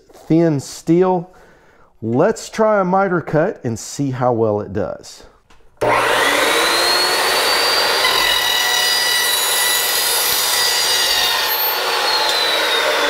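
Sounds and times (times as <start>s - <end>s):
chop saw cutting steel tubing: 5.8s - 13.0s.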